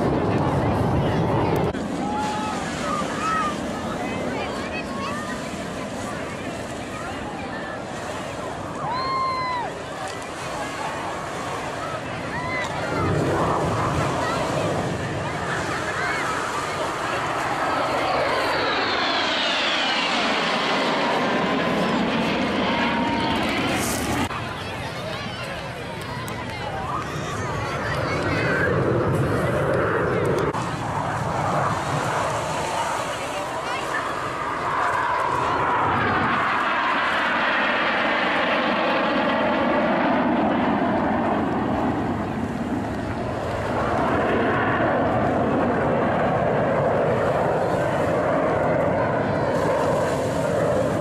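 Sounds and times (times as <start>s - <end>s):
jet flying past: 0.0s - 51.0s.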